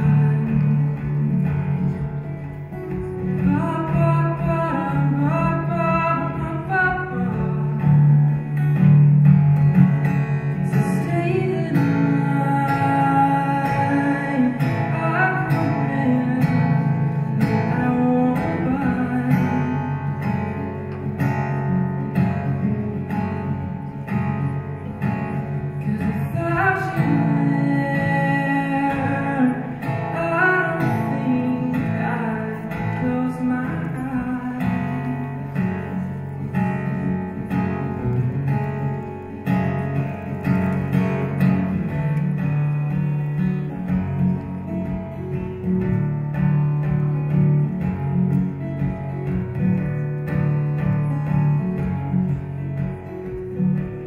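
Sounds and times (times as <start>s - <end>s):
acoustic guitar chords: 0.0s - 54.0s
man singing: 3.4s - 8.1s, 10.6s - 20.2s, 25.8s - 35.5s.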